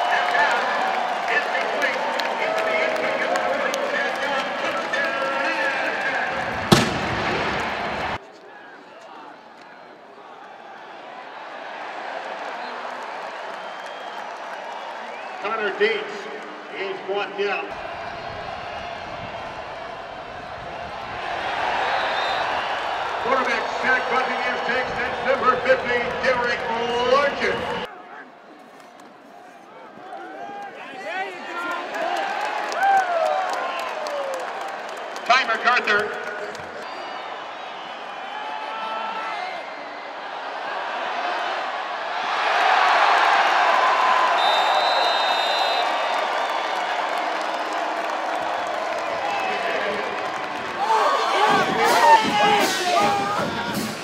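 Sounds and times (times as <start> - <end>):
stadium crowd cheering: 0.0 - 54.0.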